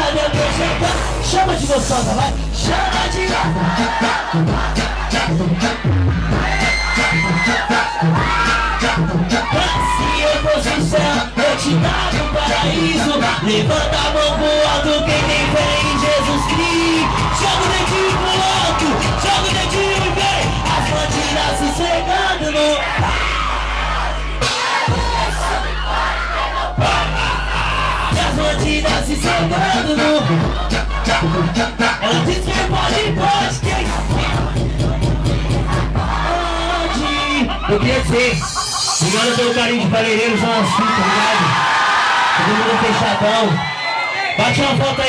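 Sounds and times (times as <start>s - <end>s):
funk track with heavy bass beat: 0.0s - 41.6s
crowd screaming and cheering: 0.0s - 45.0s.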